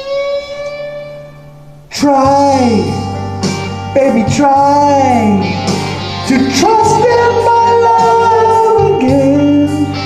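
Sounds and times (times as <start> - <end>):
electric guitar long bending note: 0.0 - 10.0.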